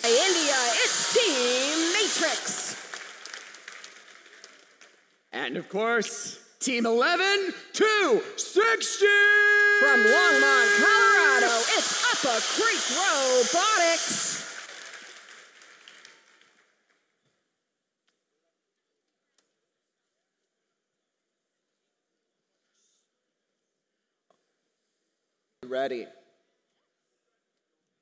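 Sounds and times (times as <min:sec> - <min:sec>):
applause: 0:00.0 - 0:05.3, 0:09.6 - 0:17.2.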